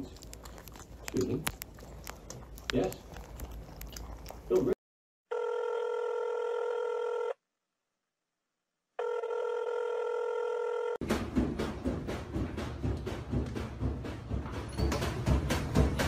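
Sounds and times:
electronic telephone ringing: 5.3s - 7.4s, 9.0s - 11.0s.

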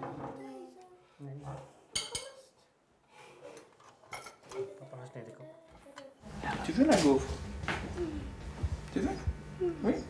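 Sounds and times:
cutlery and dishes clinking: 1.9s - 2.4s, 3.5s - 4.8s
soft voices: 7.9s - 8.4s.

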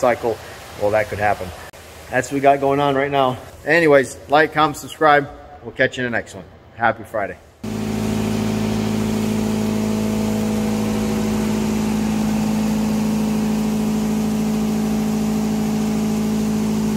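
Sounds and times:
electric motor humming: 7.6s - 16.9s.

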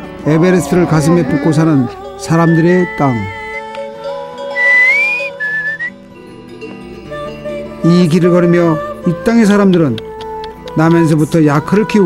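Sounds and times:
soft instrumental music: 0.0s - 12.0s
breathy whistled melody: 2.2s - 3.8s, 4.4s - 6.1s.

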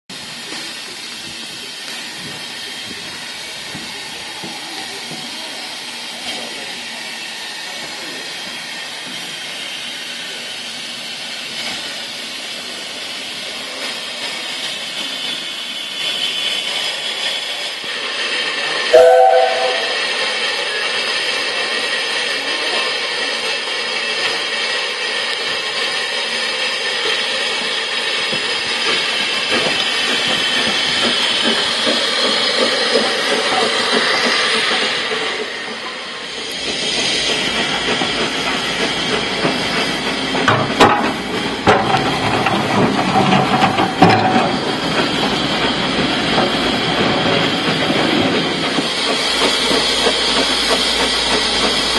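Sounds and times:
steam hissing: 0.1s - 51.9s
steam locomotive passing: 0.1s - 51.9s
steam whistle toot: 18.9s - 20.2s.

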